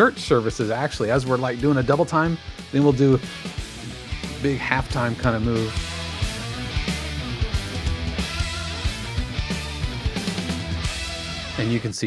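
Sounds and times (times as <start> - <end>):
hard rock music: 0.0 - 12.0.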